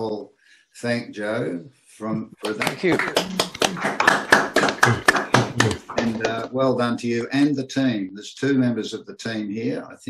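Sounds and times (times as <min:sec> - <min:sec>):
voices: 0:00.8 - 0:10.0
people clapping: 0:02.4 - 0:06.5.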